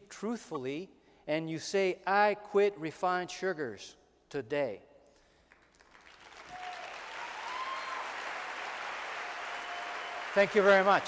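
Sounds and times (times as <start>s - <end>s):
audience applauding: 5.5s - 11.0s.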